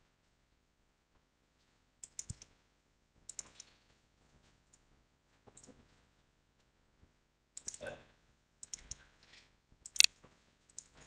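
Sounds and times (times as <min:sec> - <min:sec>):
faint computer mouse clicking: 0:02.0 - 0:02.5, 0:03.3 - 0:03.7, 0:07.6 - 0:07.8, 0:08.6 - 0:09.0.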